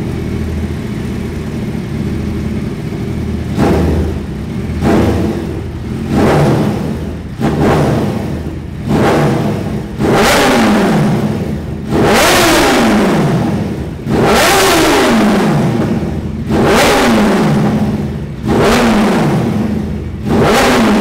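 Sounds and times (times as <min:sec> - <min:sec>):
motorcycle engine revving: 0:00.0 - 0:21.0.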